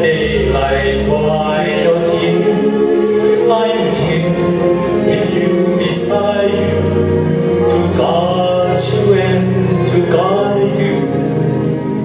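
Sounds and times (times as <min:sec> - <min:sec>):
man singing a ballad: 0:00.0 - 0:06.8, 0:07.6 - 0:11.2
backing music: 0:00.0 - 0:12.0.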